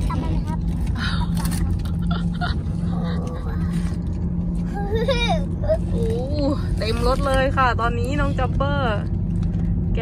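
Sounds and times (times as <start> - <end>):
car cabin rumble: 0.0 - 10.0
engine and road noise: 0.0 - 10.0.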